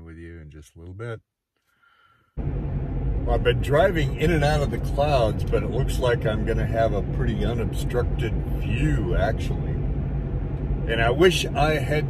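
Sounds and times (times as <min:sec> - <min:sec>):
man speaking: 0:00.0 - 0:01.2, 0:03.3 - 0:09.8, 0:10.9 - 0:12.0
car engine and road noise: 0:02.0 - 0:12.0.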